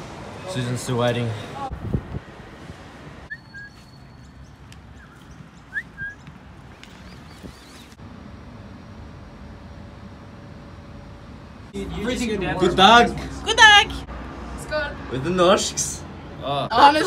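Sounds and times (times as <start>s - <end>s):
outdoor background noise: 0.0s - 17.0s
rising bird chirps: 3.3s - 6.3s, 7.0s - 8.0s.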